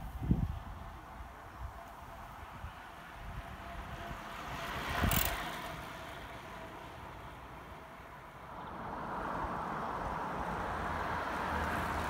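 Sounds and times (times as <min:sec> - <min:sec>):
bicycle passing at speed: 0:03.9 - 0:06.6.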